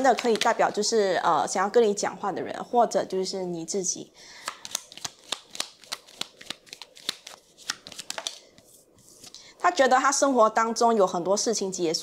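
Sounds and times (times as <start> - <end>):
cards being shuffled: 4.4 - 9.4.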